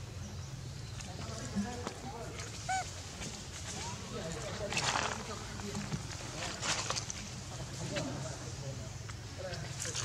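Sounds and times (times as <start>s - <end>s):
monkey coos: 2.5s - 3.0s.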